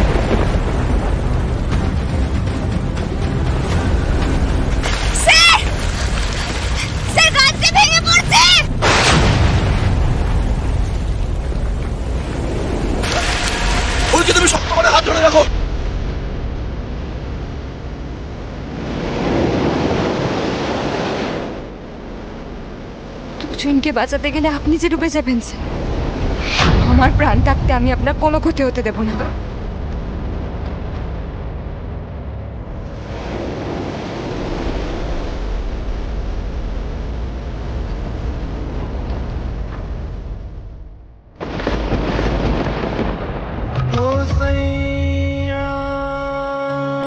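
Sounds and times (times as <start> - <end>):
river water rushing: 2.5 - 15.4.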